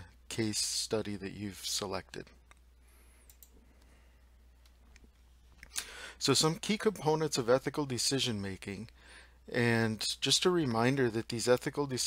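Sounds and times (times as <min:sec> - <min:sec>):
low steady hum: 0:00.0 - 0:12.0
faint clicks: 0:02.4 - 0:03.9.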